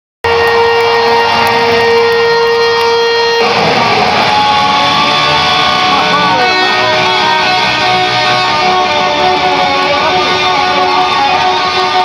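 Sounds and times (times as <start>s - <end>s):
electric guitar solo: 0.2s - 12.0s.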